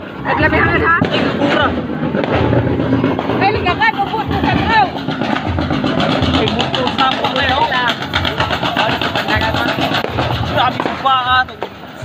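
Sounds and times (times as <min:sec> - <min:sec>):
people calling out and talking: 0:00.0 - 0:12.0
low pulsing rumble: 0:00.1 - 0:11.4.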